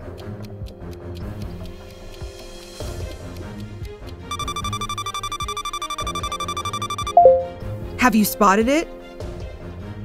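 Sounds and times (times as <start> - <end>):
background music: 0.0 - 10.0
electronic alarm ring: 4.3 - 7.5.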